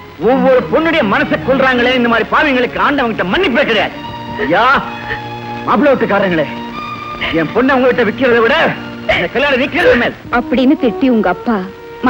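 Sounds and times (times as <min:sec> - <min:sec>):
background music: 0:00.0 - 0:12.0
people talking: 0:00.2 - 0:05.0, 0:05.7 - 0:06.6, 0:07.2 - 0:11.8.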